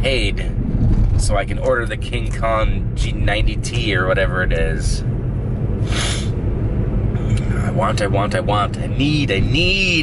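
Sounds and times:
car road and engine rumble: 0:00.0 - 0:10.0
person sniffing: 0:05.8 - 0:06.4.

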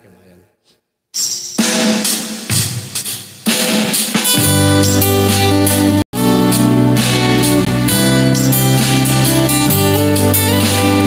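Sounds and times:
drum kit snare and bass drum: 0:01.2 - 0:11.0.

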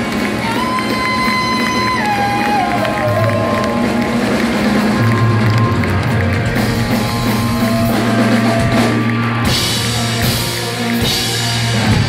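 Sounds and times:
live rock band playing loudly: 0:00.0 - 0:12.0.

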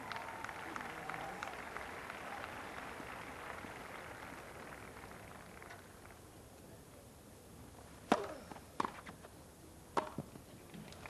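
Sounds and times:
tennis ball struck by racket: 0:08.1 - 0:09.1, 0:10.0 - 0:10.3.

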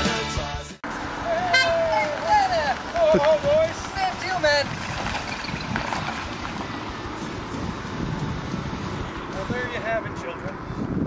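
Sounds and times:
rock music: 0:00.0 - 0:01.0
car horn toot: 0:01.3 - 0:02.5.

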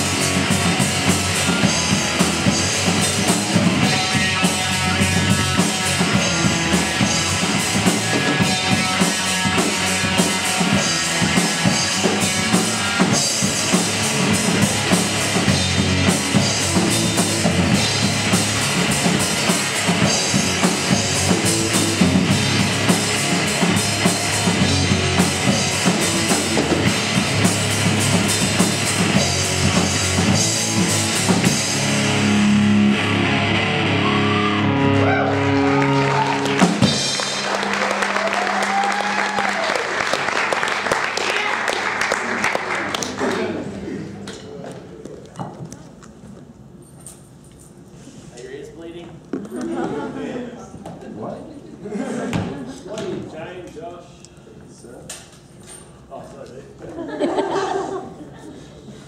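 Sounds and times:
drum kit beat: 0:00.0 - 0:34.0, 0:35.1 - 0:41.1
distorted electric guitar: 0:00.0 - 0:38.1
electric bass: 0:00.0 - 0:39.6.

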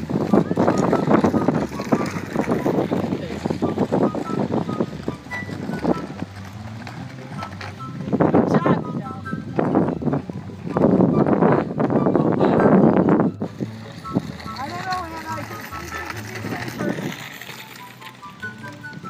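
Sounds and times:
scooter wheels rattling on asphalt: 0:00.0 - 0:19.0.

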